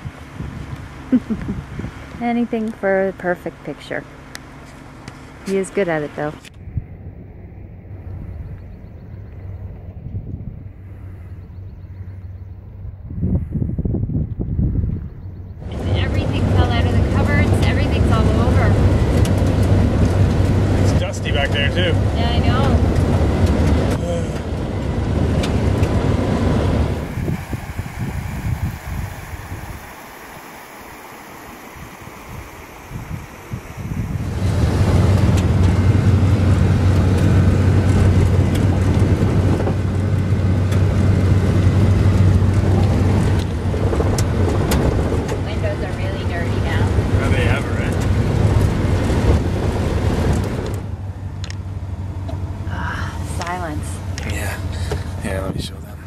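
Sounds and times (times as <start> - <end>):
engine and tyre rumble on gravel: 0.0 - 56.0.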